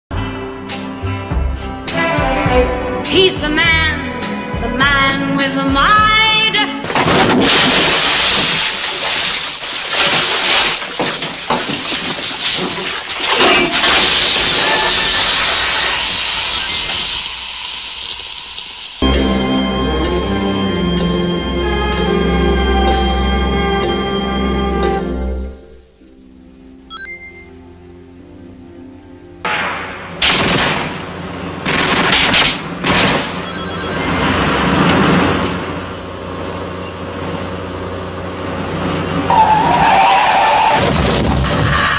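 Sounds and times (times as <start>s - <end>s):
bathtub water splashing: 7.1s - 14.5s.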